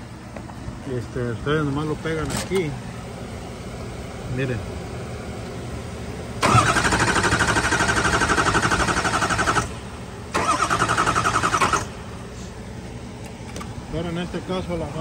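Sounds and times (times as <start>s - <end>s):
starter motor cranking: 6.4s - 9.7s, 10.3s - 11.9s.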